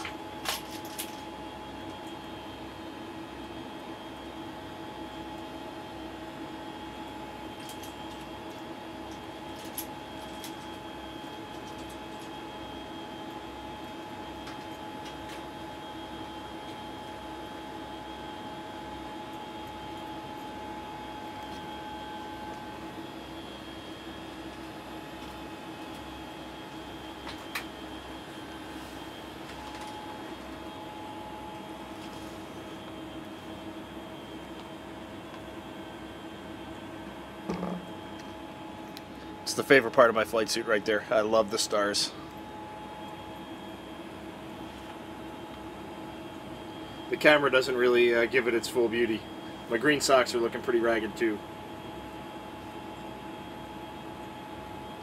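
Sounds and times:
ventilation fans whirring: 0.0 - 55.0.

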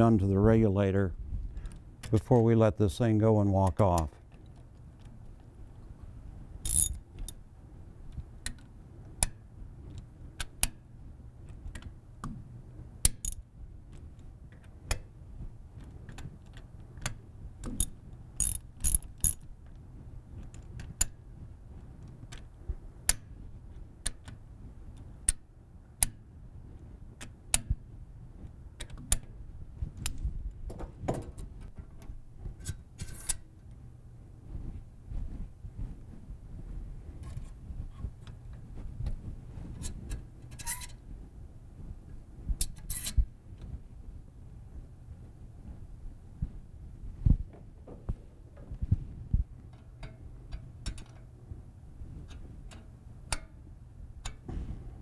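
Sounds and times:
ratchet wrench clicking: 6.6 - 7.0, 17.8 - 19.4
wrench clinking on metal fittings: 6.6 - 7.4, 17.8 - 19.4.

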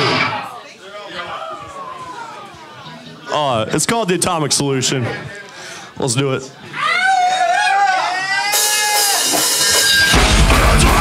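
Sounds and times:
metal band with fast heavy drums: 8.5 - 11.0.

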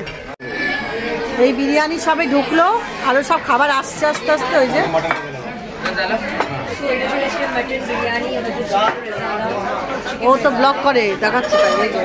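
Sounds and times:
overlapping conversation: 1.4 - 12.0.

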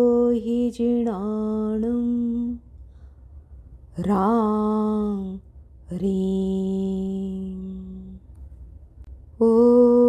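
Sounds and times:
woman chanting: 0.0 - 2.6, 3.9 - 8.2, 9.4 - 10.0.

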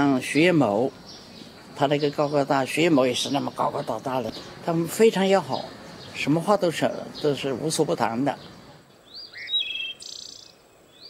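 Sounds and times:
songbird whistled notes: 9.1 - 11.0.

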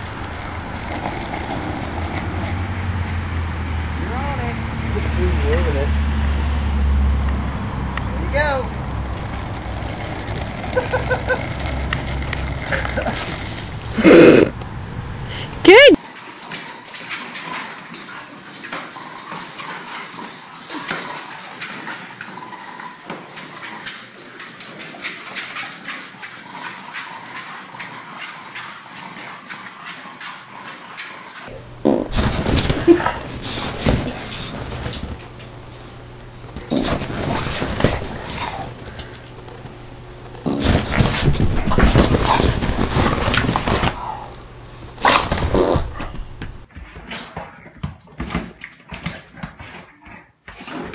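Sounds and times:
feet and paws tapping on treadmill: 16.0 - 31.5, 40.4 - 44.0, 46.0 - 50.9.

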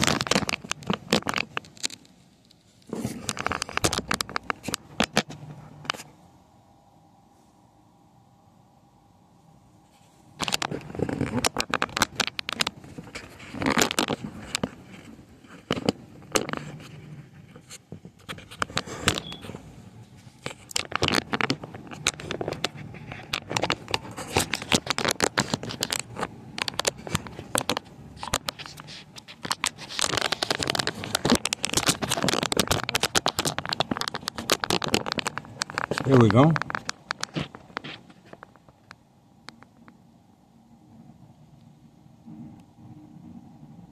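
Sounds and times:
phone microphone rubbing: 9.8 - 38.8.

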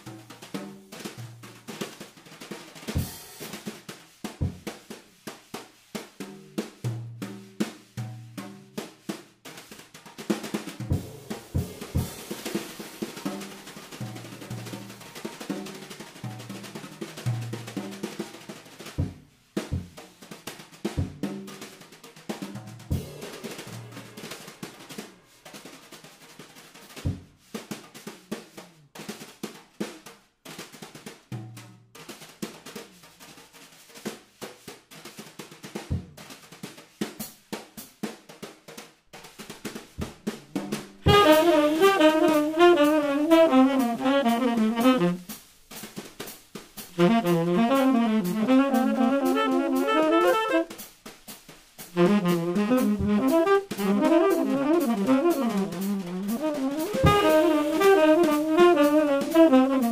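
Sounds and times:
snare drum strokes: 0.0 - 59.9
tom fills: 10.8 - 15.8, 22.8 - 25.6, 40.0 - 50.8, 51.9 - 59.9.

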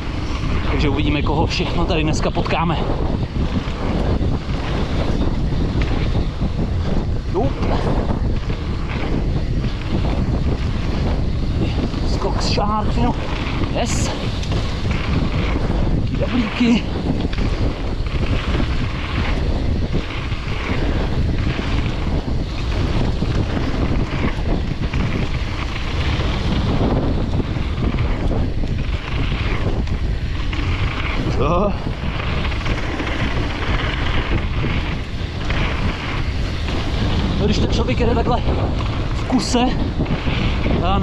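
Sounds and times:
bike tyres rolling over dirt: 0.0 - 41.0
wind buffeting microphone: 0.0 - 41.0.

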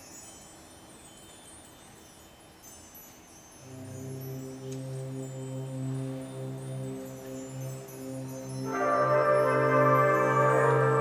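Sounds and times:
faint high chime-like ringing: 0.0 - 11.0
low sustained band chords: 3.6 - 11.0.

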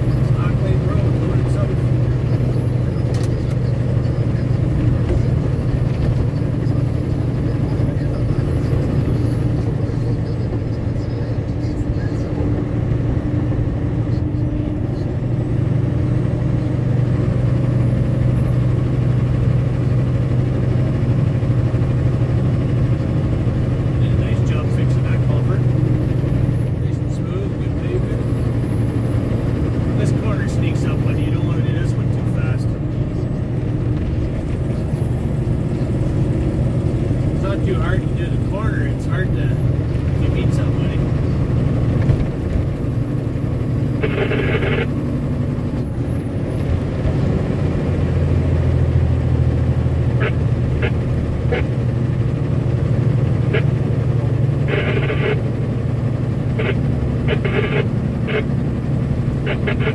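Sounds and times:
truck engine and tyre hum: 0.0 - 59.9.

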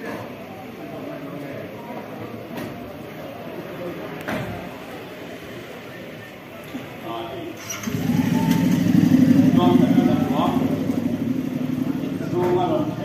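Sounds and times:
vehicle engine starting and pulsing: 7.5 - 13.0.

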